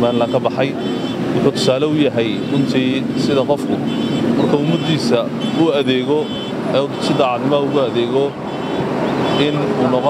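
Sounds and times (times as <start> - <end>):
man speaking: 0.0 - 0.8, 1.4 - 8.4, 9.4 - 10.0.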